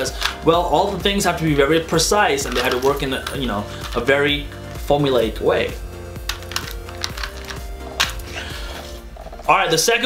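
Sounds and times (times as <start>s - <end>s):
quiet background music: 0.0s - 10.0s
puzzle cube plastic clicking: 6.3s - 8.3s.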